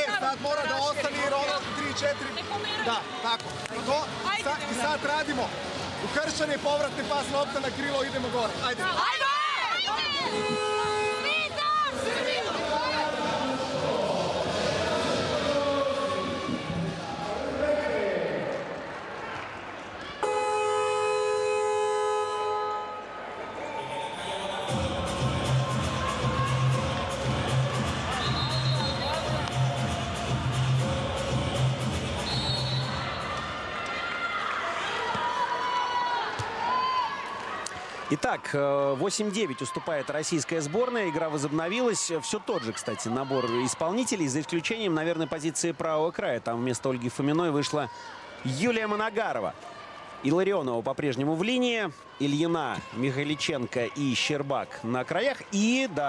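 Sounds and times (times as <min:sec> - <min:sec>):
coach talking to team: 0:00.0 - 0:16.3
crowd noise: 0:00.0 - 0:56.0
electronic horn: 0:10.3 - 0:11.3, 0:20.2 - 0:23.2
arena music: 0:24.4 - 0:33.8.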